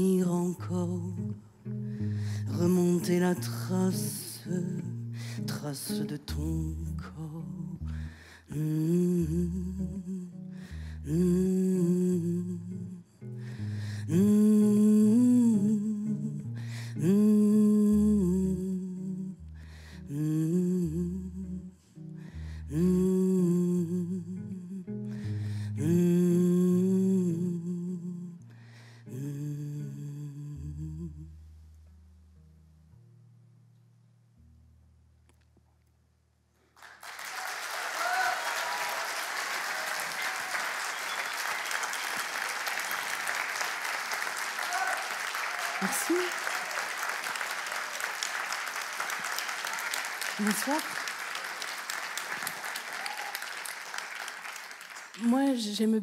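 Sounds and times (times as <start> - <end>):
electric bass guitar notes: 6.3 - 36.4
audience applauding: 36.8 - 55.6.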